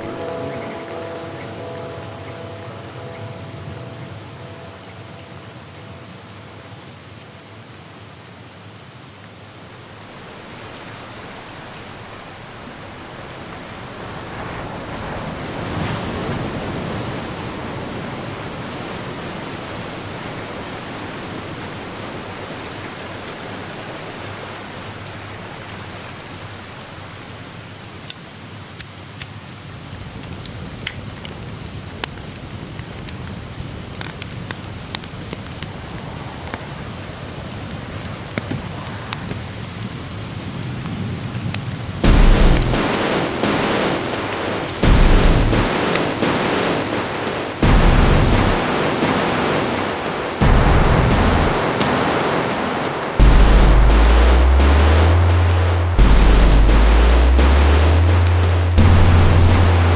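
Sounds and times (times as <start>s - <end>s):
sharp crackles and clicks: 30.0s - 59.9s
experimental electronic noise wash: 42.0s - 59.9s.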